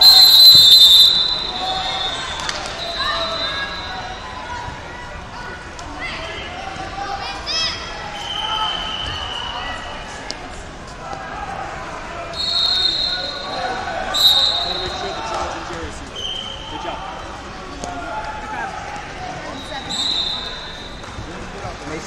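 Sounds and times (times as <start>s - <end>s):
whistle blasts: 0.0s - 4.5s, 8.1s - 9.8s, 12.3s - 15.4s, 16.2s - 16.9s, 19.5s - 21.2s
crowd voices and shouts: 0.0s - 22.0s.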